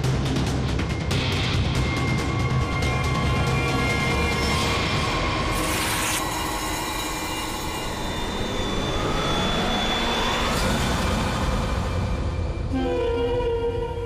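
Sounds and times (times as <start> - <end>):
sustained synth drone: 1.2 - 14.0.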